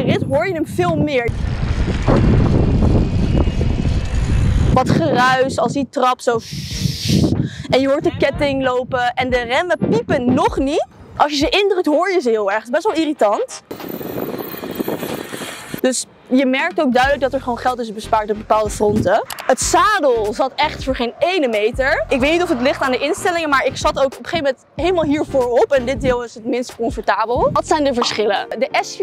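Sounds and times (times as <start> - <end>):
wind on microphone: 0.0 - 11.8, 12.9 - 15.9, 17.1 - 28.4
steady rushing outdoor noise: 0.0 - 28.2
bike drivetrain rushing noise: 1.0 - 5.5, 13.6 - 15.8.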